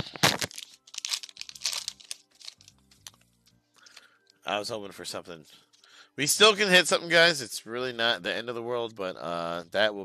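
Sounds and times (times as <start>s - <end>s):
foil wrapper crinkling and tearing: 0.0s - 3.2s
faint music: 0.0s - 10.0s.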